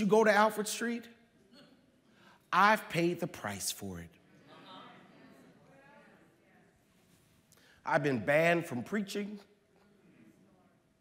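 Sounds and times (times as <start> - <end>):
congregation voices calling out: 1.4 - 6.8.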